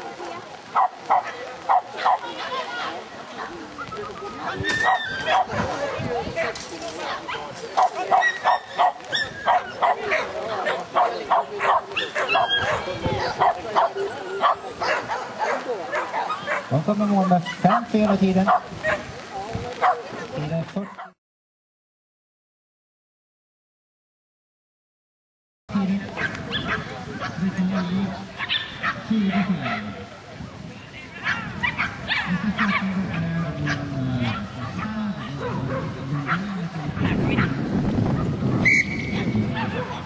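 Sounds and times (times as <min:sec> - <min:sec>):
dog barking: 0:00.7 - 0:03.6, 0:04.8 - 0:06.6, 0:07.3 - 0:17.9, 0:18.5 - 0:19.1, 0:19.8 - 0:20.0, 0:20.8 - 0:21.2, 0:27.8 - 0:29.9, 0:31.2 - 0:32.9, 0:33.6 - 0:37.6, 0:39.6 - 0:40.0.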